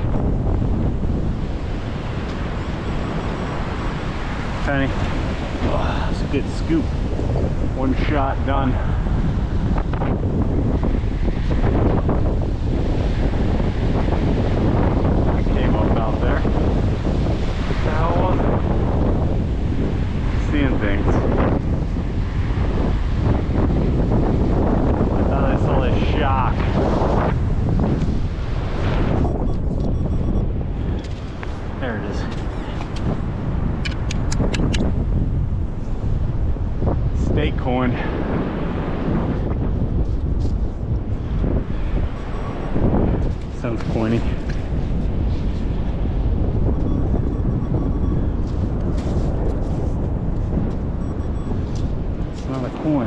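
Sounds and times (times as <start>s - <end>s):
surf washing: 0.0s - 29.8s, 30.4s - 53.0s
wind buffeting microphone: 0.0s - 53.0s.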